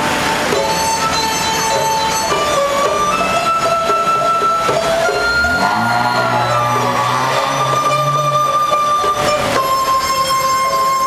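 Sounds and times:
bamboo flute melody: 0.0s - 11.0s
plucked string accompaniment: 0.0s - 11.0s.

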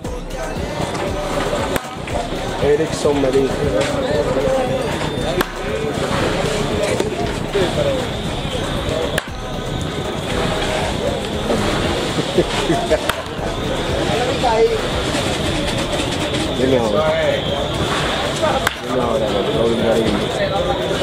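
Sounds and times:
background music: 0.0s - 21.0s
voices: 0.0s - 21.0s
baseball bat cracking ball: 1.6s - 2.2s, 4.9s - 7.4s, 9.1s - 9.4s, 12.5s - 13.5s, 17.9s - 18.9s.

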